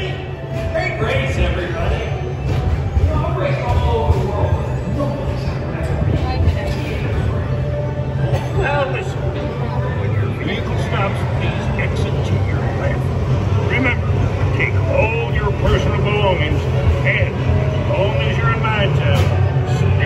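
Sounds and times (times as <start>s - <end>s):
indistinct voices: 0.0s - 20.0s.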